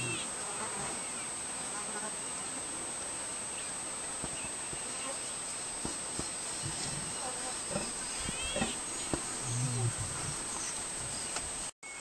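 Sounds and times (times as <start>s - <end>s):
lions growling and snarling: 6.6s - 10.8s.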